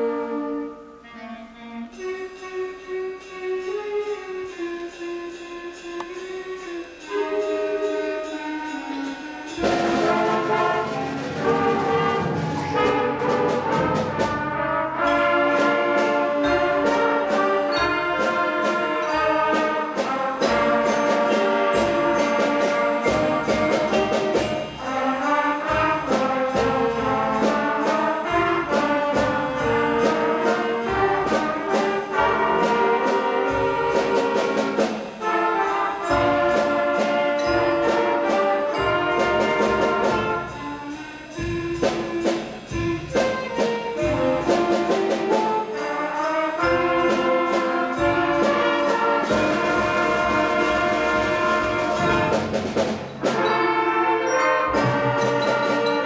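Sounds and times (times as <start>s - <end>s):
brass and saxophones playing: 0.0s - 56.0s
xylophone striking notes: 2.0s - 14.2s, 15.0s - 25.1s, 36.0s - 56.0s.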